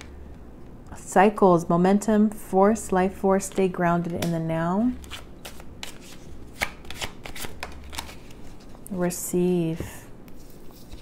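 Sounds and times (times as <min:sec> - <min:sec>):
cards being shuffled: 0:05.0 - 0:08.8, 0:10.3 - 0:11.0.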